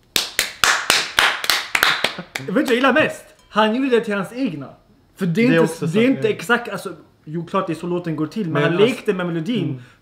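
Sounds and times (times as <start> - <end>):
people clapping hands: 0.0 - 3.0.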